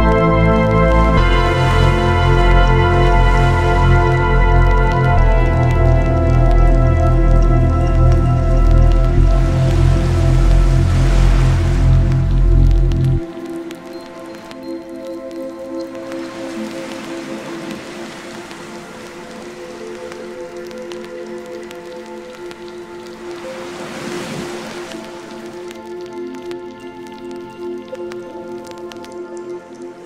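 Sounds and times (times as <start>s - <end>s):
melodic techno synth chords: 0.0s - 15.8s.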